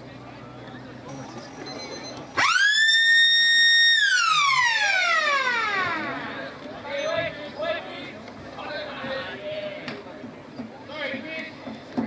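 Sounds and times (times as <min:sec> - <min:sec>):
siren winding up and down: 0:02.4 - 0:06.3.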